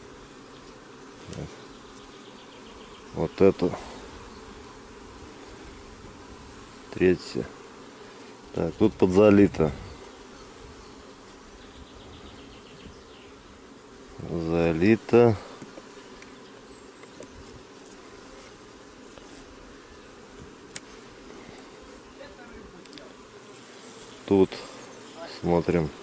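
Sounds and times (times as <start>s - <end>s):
honey bees buzzing: 0.0s - 26.0s.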